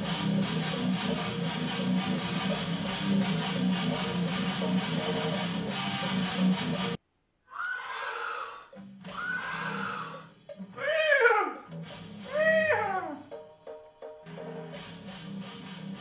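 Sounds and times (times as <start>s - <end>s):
electric guitar riff: 0.0s - 7.0s, 8.8s - 16.0s
high wailing calls: 7.5s - 11.7s.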